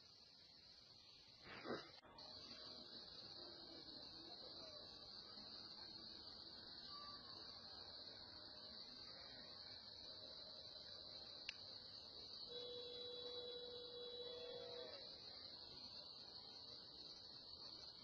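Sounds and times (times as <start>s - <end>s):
crickets chirring: 0.0s - 18.0s
faint held tone: 12.2s - 16.0s.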